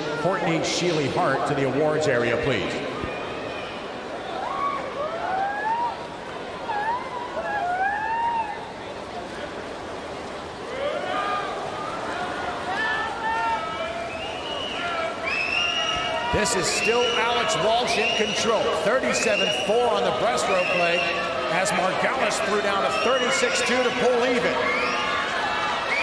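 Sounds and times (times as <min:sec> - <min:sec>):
spectators yelling: 0:00.0 - 0:09.0, 0:10.6 - 0:26.0
crowd noise: 0:00.0 - 0:26.0.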